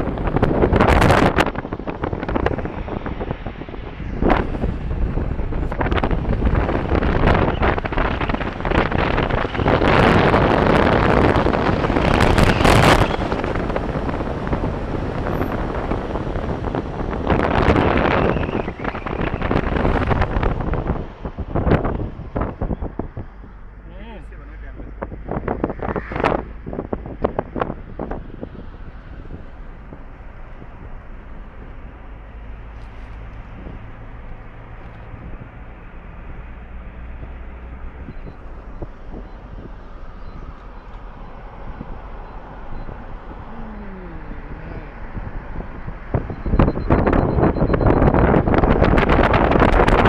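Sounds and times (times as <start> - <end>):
wind rumbling on microphone: 0.0 - 50.0.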